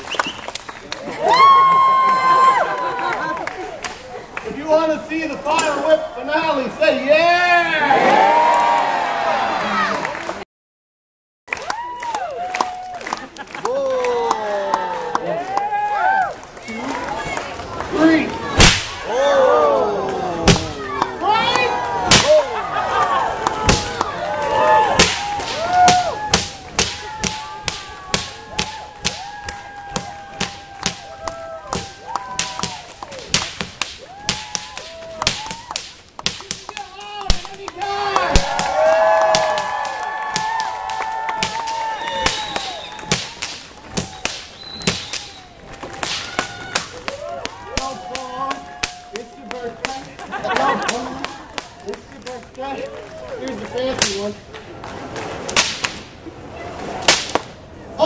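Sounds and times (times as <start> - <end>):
whips cracking: 18.6 - 19.1, 22.1 - 22.5, 24.9 - 29.6, 30.4 - 37.6, 40.3 - 52.0, 55.4 - 56.1, 57.0 - 57.6.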